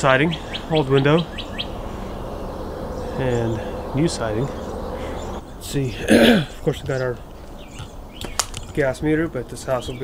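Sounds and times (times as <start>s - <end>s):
small bird chirping: 0.0s - 10.0s.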